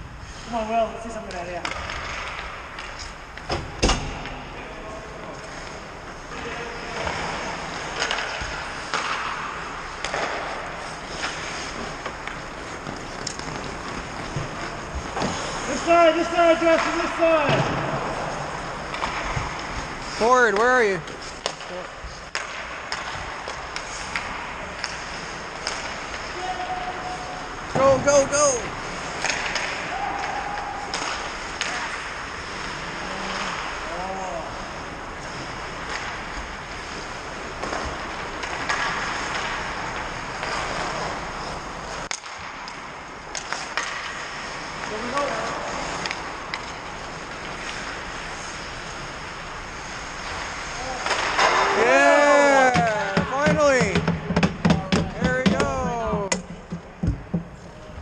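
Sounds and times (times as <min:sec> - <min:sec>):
hockey sticks and puck clacking: 0:00.3 - 0:58.0
players shouting: 0:26.3 - 0:28.7, 0:29.6 - 0:31.6, 0:50.8 - 0:56.4.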